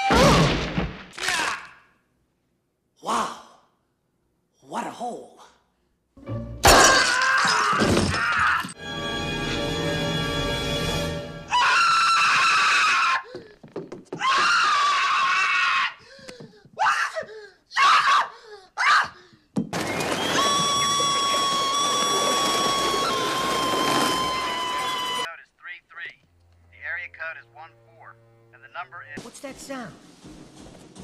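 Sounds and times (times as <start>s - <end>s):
man screaming in terror: 11.5s - 13.4s, 14.2s - 16.0s.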